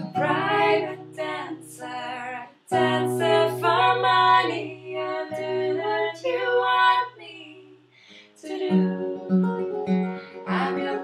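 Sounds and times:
woman singing sliding notes: 0:00.0 - 0:07.8, 0:08.4 - 0:09.0, 0:10.4 - 0:11.0.

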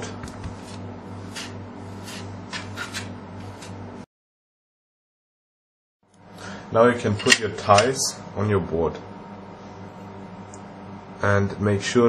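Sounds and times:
scraper rasping across board: 0:00.5 - 0:03.7.

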